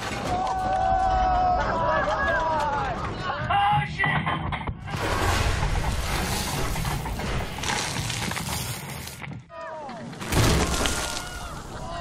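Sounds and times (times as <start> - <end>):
liquid sloshing and splashing: 4.9 - 9.2.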